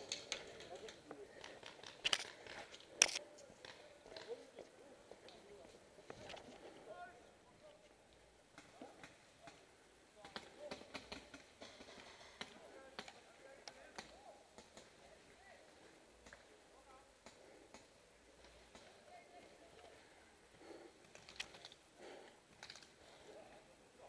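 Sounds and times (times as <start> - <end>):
faint distant voices: 0.0 - 24.0.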